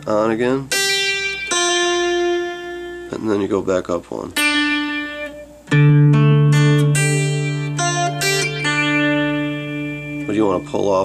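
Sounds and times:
acoustic guitar chord with pull-offs: 0.0 - 11.0.

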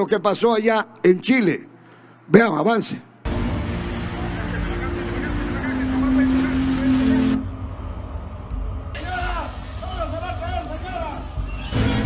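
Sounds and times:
steady wash of noise: 3.1 - 12.0.

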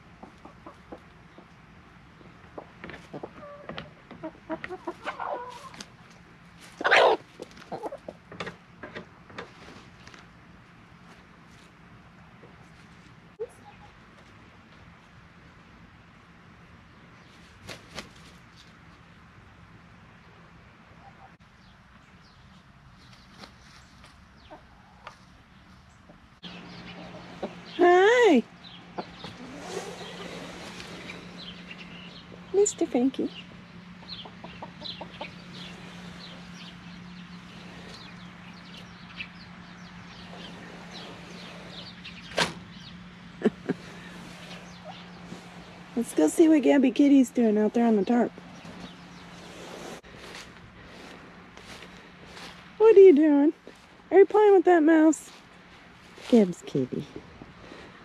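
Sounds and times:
hens clucking softly: 0.0 - 1.6, 2.6 - 8.5, 26.1 - 27.8, 33.4 - 39.3
chickens clucking: 0.0 - 10.2, 13.4 - 14.3, 23.1 - 25.4, 26.0 - 46.8
loud chicken call: 6.8 - 7.9.

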